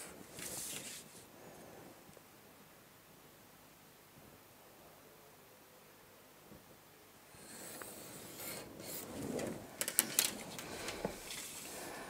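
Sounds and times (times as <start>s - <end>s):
paper rustling: 0.0s - 1.2s, 8.3s - 12.0s
pencil scratching along a ruler: 7.4s - 9.3s
sharp clicks of drafting tools: 7.8s - 11.5s.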